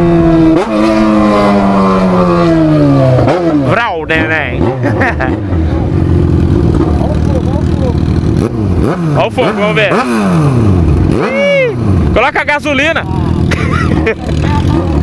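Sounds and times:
motorcycle engine slowing down: 4.8 - 9.3, 11.9 - 15.0
engine revs on downshift: 8.2 - 12.2.

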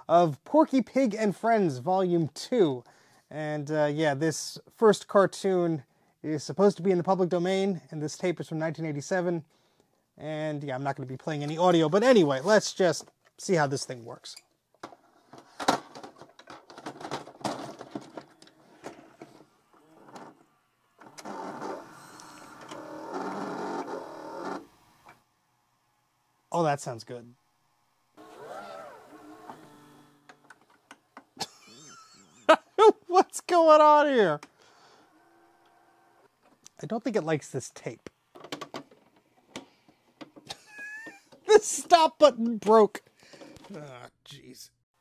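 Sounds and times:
tape deck motor whirring: 18.2 - 25.2, 28.2 - 30.8
cassette mechanism clicks and clunks: 38.4 - 40.4.

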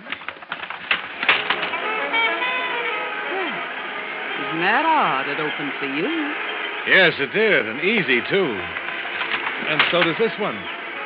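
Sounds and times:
window sash knocking and rattling: 0.6 - 1.8
brass band music: 0.9 - 11.0.

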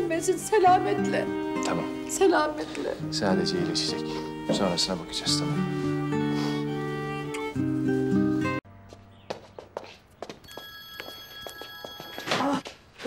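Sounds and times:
background music: 0.0 - 8.6
footsteps in a room: 8.8 - 13.0
mobile phone ringing: 10.4 - 12.6.

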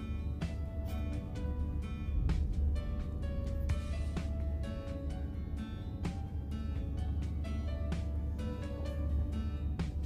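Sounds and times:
melody with plucked notes: 0.0 - 10.0
steady low rumble: 0.0 - 10.0.

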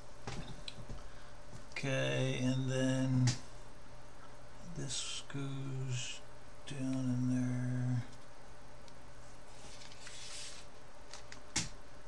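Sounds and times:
man humming low note: 4.7 - 8.2.

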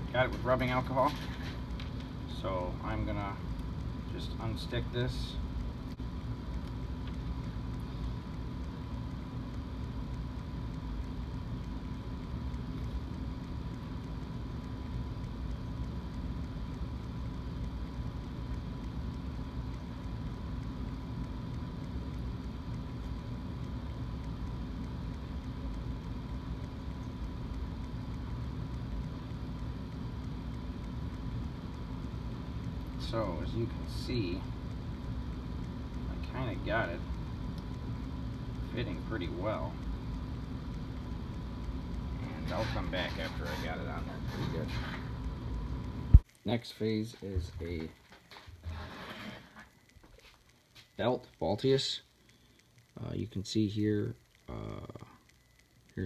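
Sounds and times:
low hum: 0.0 - 56.0
background hiss: 7.4 - 56.0.

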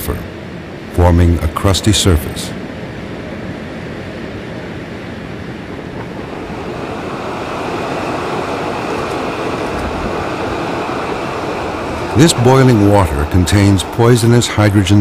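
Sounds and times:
steam venting with rushing hiss: 5.8 - 15.0.

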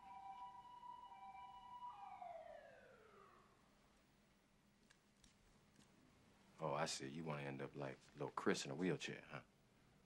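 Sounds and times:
distant siren winding down: 0.0 - 3.8.

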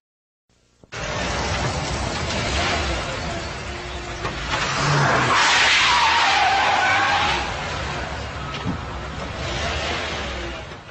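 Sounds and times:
car tyres squealing: 1.0 - 10.9.

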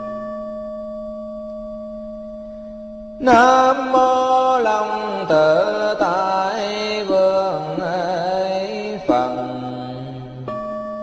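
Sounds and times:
person chanting: 3.2 - 11.0.

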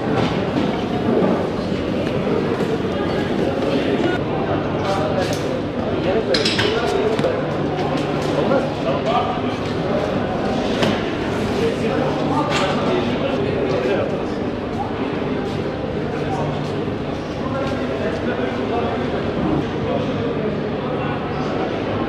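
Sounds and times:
chatter echoing in a hall: 0.0 - 22.0.

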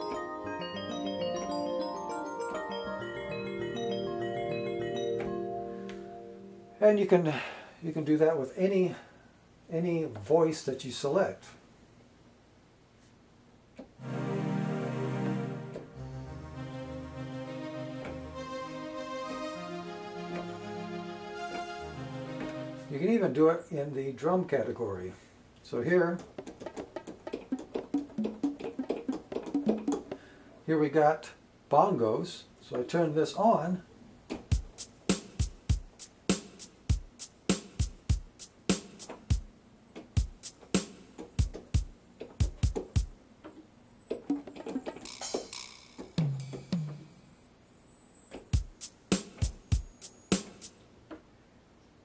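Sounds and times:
electronic bongo drum hits: 34.5 - 39.5, 40.2 - 43.2, 45.1 - 47.2, 48.6 - 50.7.

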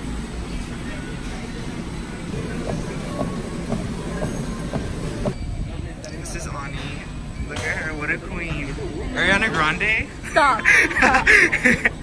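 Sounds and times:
treadmill belt and motor noise: 0.0 - 6.7.

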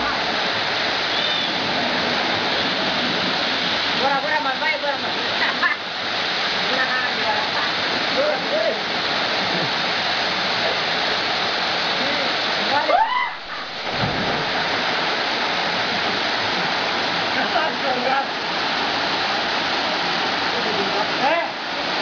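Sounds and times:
waterfall rushing: 0.0 - 22.0.

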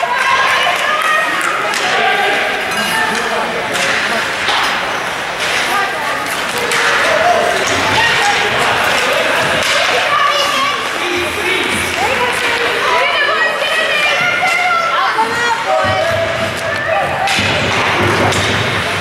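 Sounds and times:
hockey sticks clacking on puck: 0.0 - 19.0
spectators chattering: 0.0 - 19.0.

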